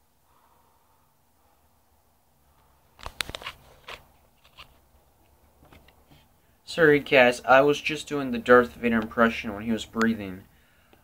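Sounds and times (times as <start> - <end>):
microphone handling clicks and knocks: 3.0 - 6.3.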